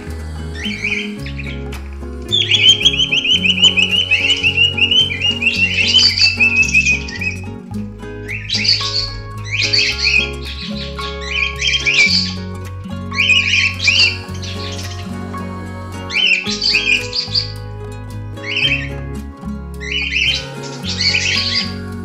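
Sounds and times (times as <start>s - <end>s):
bird chirping: 0.0s - 12.4s
background music with low notes: 0.0s - 22.0s.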